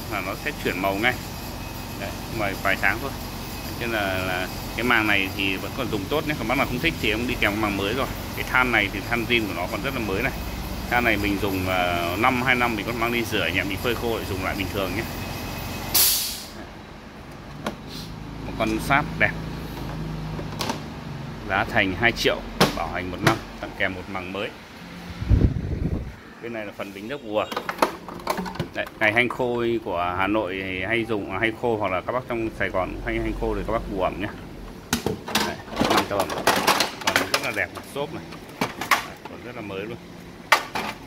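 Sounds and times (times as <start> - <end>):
sharp plastic knocks: 22.6 - 23.4.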